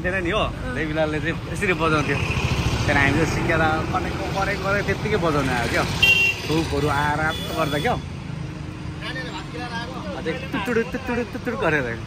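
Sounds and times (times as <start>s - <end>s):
engine rumble: 0.0s - 7.3s
road traffic: 0.0s - 12.0s.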